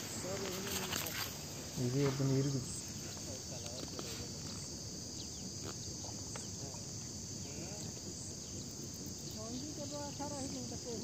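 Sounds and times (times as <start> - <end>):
high-pitched insect chorus: 0.0 - 11.0.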